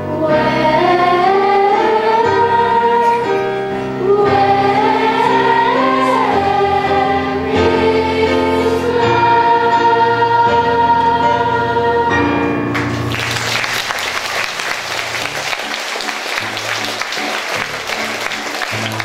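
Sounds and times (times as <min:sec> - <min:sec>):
choir of young singers: 0:00.0 - 0:12.7
audience applause: 0:12.8 - 0:19.0.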